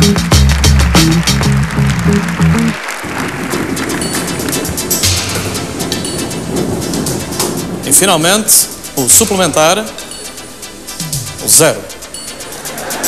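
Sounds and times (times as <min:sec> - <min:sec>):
theme tune with heavy bass: 0:00.0 - 0:13.0.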